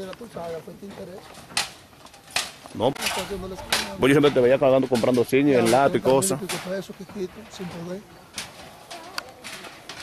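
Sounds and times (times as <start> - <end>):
debris knocks and rustles: 0.0 - 10.0.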